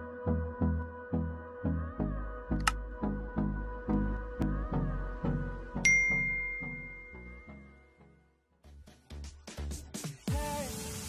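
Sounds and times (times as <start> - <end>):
electronic intro music: 2.0 - 8.2
notification bell ding: 5.8 - 7.6.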